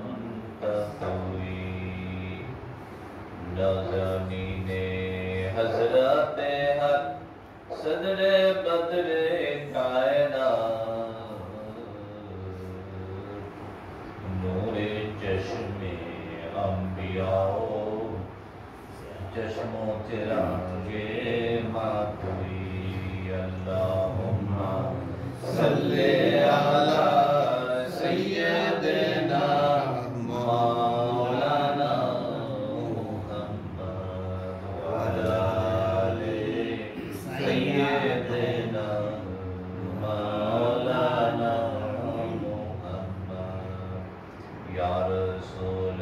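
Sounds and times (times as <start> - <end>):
man chanting through microphone: 0.0 - 46.0
steady low hum: 0.0 - 46.0.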